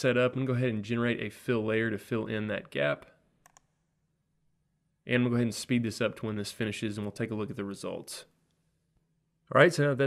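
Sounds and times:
computer mouse click: 0:03.4 - 0:03.7.

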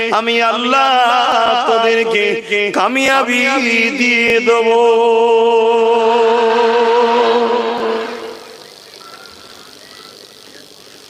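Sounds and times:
man singing long note: 0:00.0 - 0:08.5.

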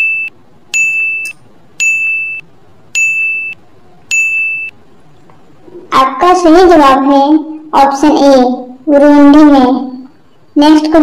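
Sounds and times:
high electronic beeps: 0:00.0 - 0:04.8.

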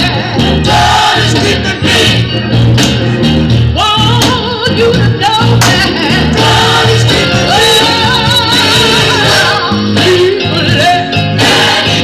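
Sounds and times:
gospel choir singing: 0:00.0 - 0:02.4, 0:05.6 - 0:12.0
pulsing bass line: 0:00.0 - 0:12.0.

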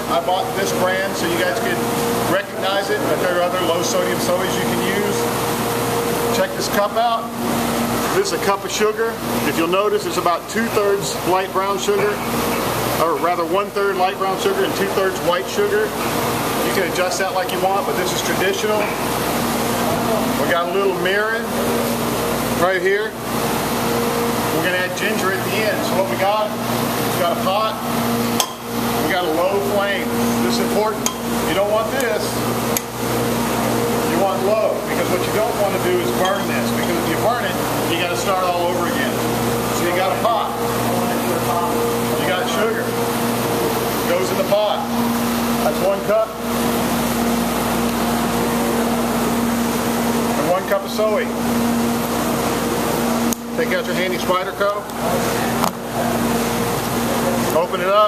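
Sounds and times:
man talking: 0:00.0 - 0:05.4, 0:06.2 - 0:07.4, 0:08.1 - 0:12.3, 0:13.0 - 0:16.0, 0:16.6 - 0:18.9, 0:19.8 - 0:21.6, 0:22.6 - 0:23.2, 0:24.5 - 0:27.9, 0:29.0 - 0:32.5, 0:33.9 - 0:43.1, 0:43.9 - 0:45.0, 0:45.6 - 0:46.4, 0:50.3 - 0:51.4, 0:53.5 - 0:55.4, 0:57.1 - 0:58.0
steady low hum: 0:00.0 - 0:58.0.

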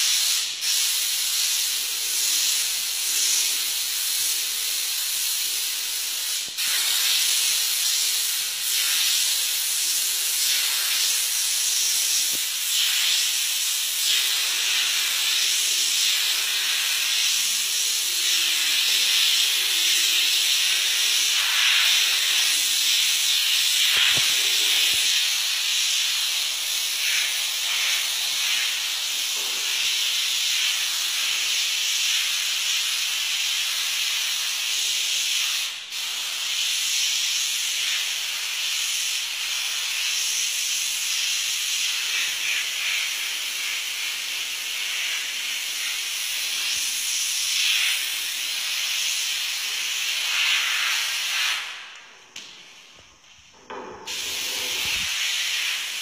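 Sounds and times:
continuous hiss: 0:00.0 - 0:56.0.

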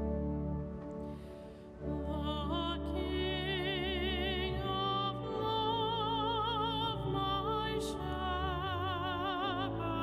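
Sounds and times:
person singing with vibrato: 0:01.8 - 0:10.0.

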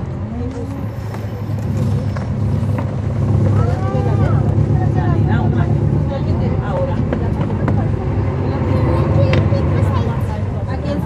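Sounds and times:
bus diesel engine drone: 0:00.0 - 0:11.0.

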